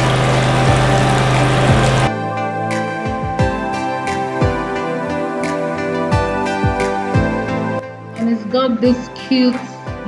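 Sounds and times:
tap water running into basin: 0.0s - 2.1s.

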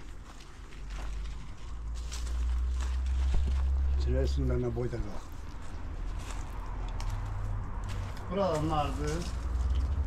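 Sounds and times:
footsteps on dry soil: 0.0s - 10.0s.

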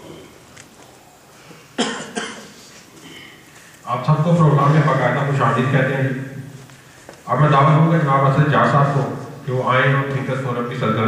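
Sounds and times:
loud cough: 1.8s - 2.6s.

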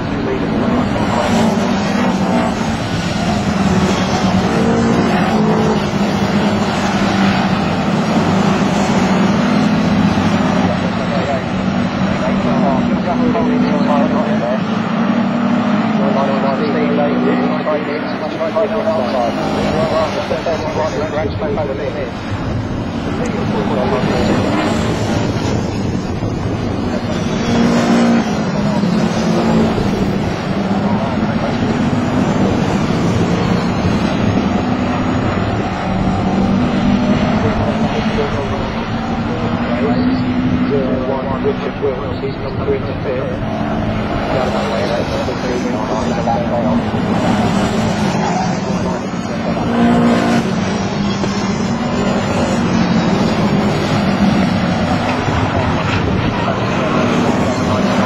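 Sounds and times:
race car engines revving: 0.0s - 58.0s.

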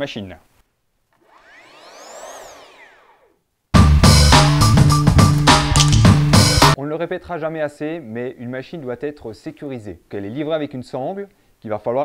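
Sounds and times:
whoosh sweep: 1.2s - 3.4s.

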